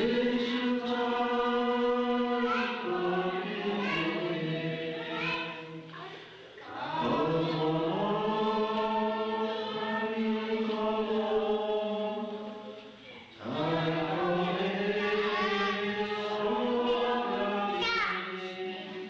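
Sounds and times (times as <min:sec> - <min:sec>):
group chanting: 0:00.0 - 0:19.0.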